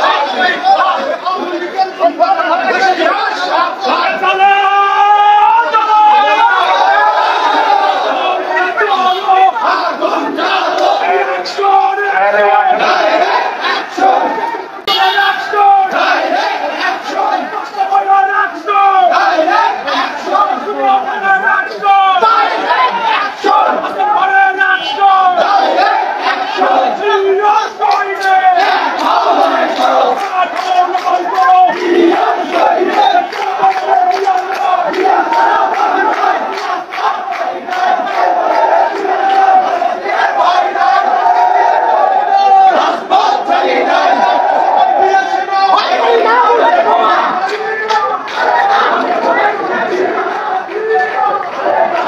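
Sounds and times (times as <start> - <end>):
crowd of men shouting slogans: 0.0 - 52.0
hand-clapping: 27.8 - 31.9, 32.5 - 39.5, 47.4 - 48.5.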